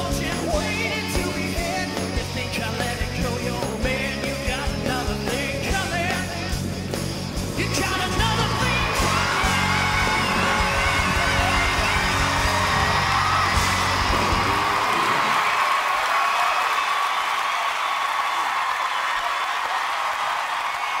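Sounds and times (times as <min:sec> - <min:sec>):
rock band and singer: 0:00.0 - 0:15.4
audience cheering and applauding: 0:07.6 - 0:21.0
whoops and yells: 0:08.6 - 0:21.0.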